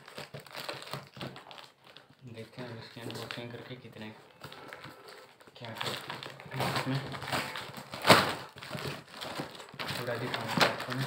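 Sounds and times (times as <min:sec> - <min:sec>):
packing tape and wrapping crinkling: 0:00.0 - 0:11.0.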